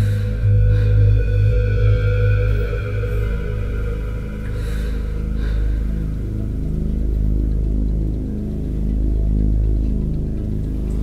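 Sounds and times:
dark tense film music: 0:00.0 - 0:11.0
deep bass drone: 0:00.0 - 0:11.0.

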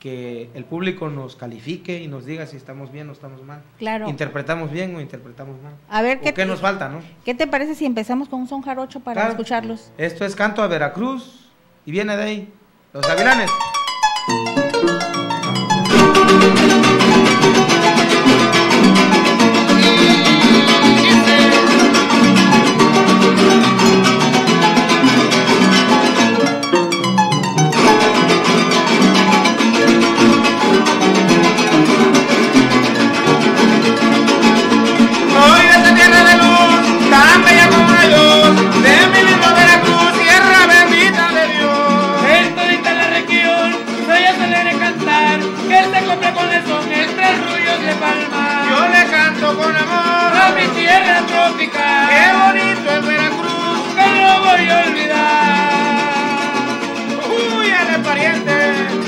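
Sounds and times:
man singing: 0:09.2 - 0:09.4, 0:16.2 - 0:23.4, 0:29.7 - 0:30.8, 0:35.2 - 0:59.0
harp: 0:13.0 - 0:39.0
strummed guitars: 0:13.0 - 0:59.0.

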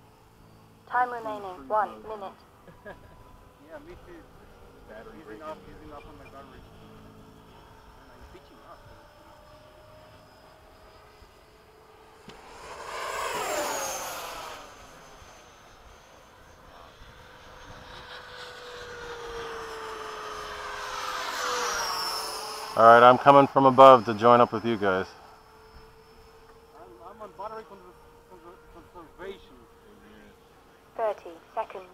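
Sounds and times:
model jets whining past: 0:00.0 - 0:31.9.

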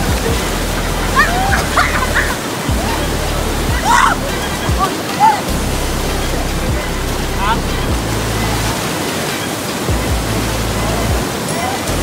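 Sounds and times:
people shouting and yelping: 0:00.0 - 0:12.0
river rapids rushing: 0:00.0 - 0:12.0.

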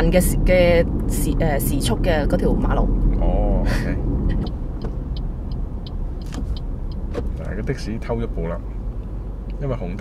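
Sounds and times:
turn signal ticking: 0:00.0 - 0:03.3, 0:04.0 - 0:10.0
car engine and tyre noise: 0:00.0 - 0:10.0.

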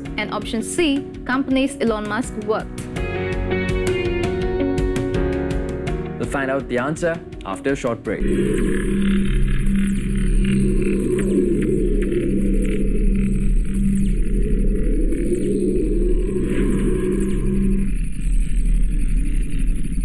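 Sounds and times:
low pulsing tone: 0:08.2 - 0:20.0
low rumble: 0:08.2 - 0:20.0.

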